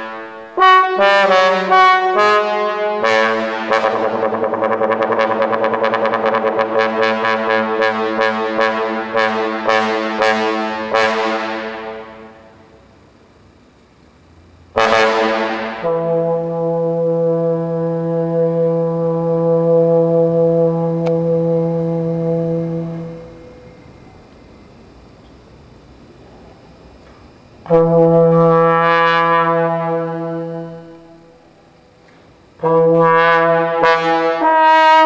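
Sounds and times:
trombone playing long low notes: 0:00.0 - 0:12.6, 0:14.7 - 0:24.0, 0:27.6 - 0:31.7, 0:32.6 - 0:35.0.

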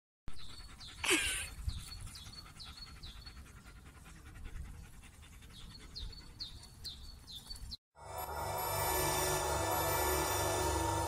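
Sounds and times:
dog panting: 0:00.3 - 0:07.3.

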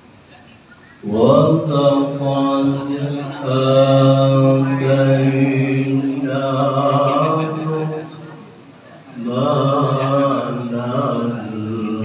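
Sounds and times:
person reciting melodiously: 0:00.7 - 0:12.0.

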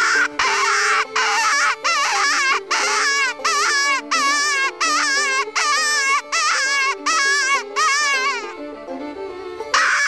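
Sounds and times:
high-pitched wailing predator call: 0:00.0 - 0:08.6, 0:09.8 - 0:10.0
background music: 0:00.0 - 0:10.0.

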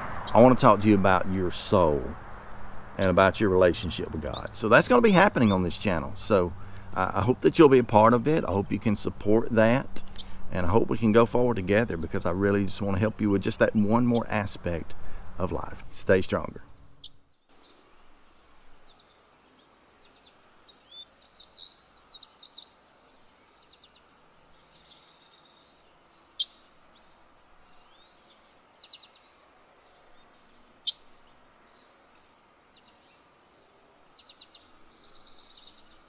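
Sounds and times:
birds chirping: 0:00.0 - 0:36.0
faint outdoor background: 0:00.0 - 0:36.0.

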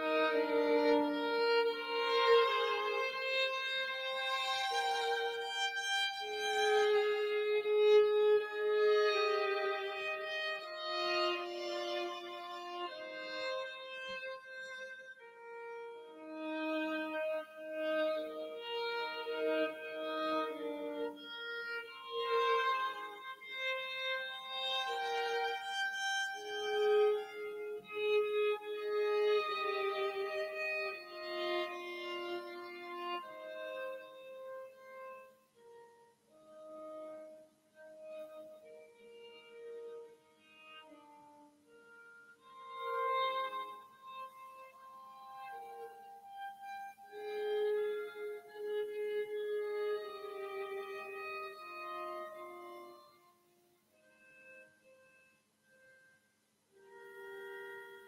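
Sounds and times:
two violins playing a duet: 0:00.0 - 0:35.3, 0:37.0 - 0:53.1.

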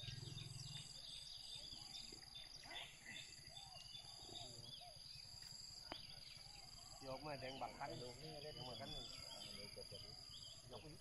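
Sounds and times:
bird chirps: 0:00.0 - 0:11.0
insect whine: 0:00.0 - 0:11.0.

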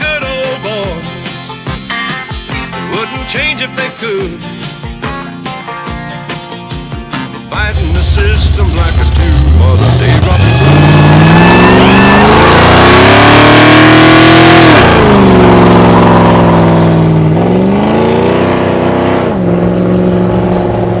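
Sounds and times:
car engine revving: 0:07.6 - 0:21.0.

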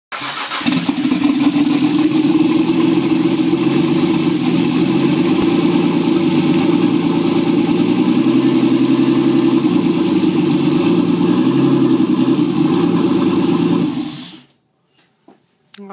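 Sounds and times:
car engine starting and idling: 0:00.1 - 0:14.5
high turbo whine: 0:00.4 - 0:14.5.

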